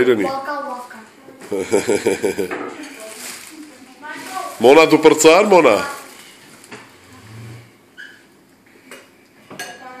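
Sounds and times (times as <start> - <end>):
plates and cutlery clinking: 8.9 - 10.0.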